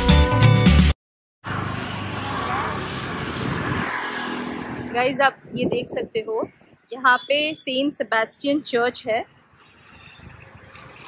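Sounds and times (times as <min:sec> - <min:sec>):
outdoor background rush: 0:01.4 - 0:11.0.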